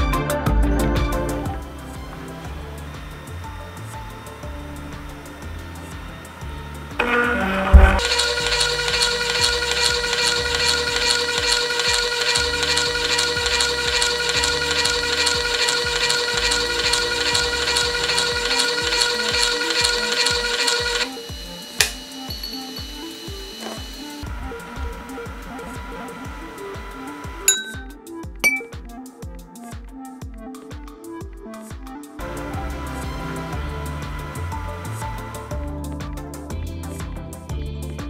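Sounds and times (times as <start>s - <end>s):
pump motor whining: 0.5s - 28.7s, 32.2s - 36.5s
sharp click: 21.8s - 22.7s.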